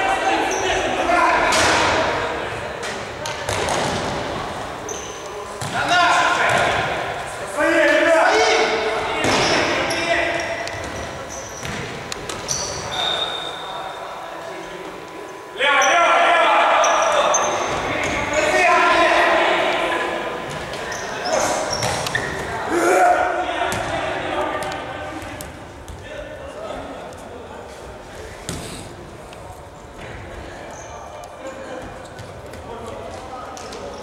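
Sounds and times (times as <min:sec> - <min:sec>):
players shouting: 0:15.3 - 0:25.0.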